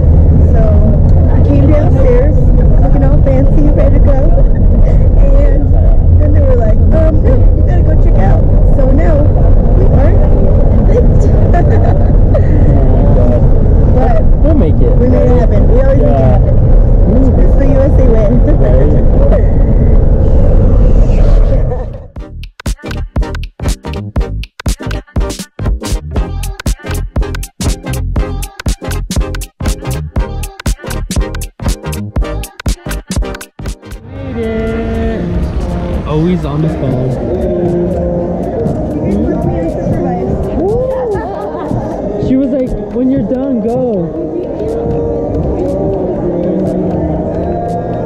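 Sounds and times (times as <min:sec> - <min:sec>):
car low rumble: 0:00.0 - 0:24.4, 0:25.6 - 0:48.0
hall background noise: 0:00.0 - 0:48.0
excited voices of passengers: 0:09.0 - 0:14.8, 0:34.0 - 0:48.0.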